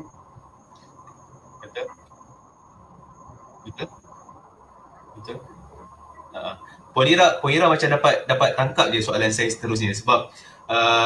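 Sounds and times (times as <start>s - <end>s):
faint high-pitched tone: 0.0s - 11.0s
low background hiss: 0.0s - 11.0s.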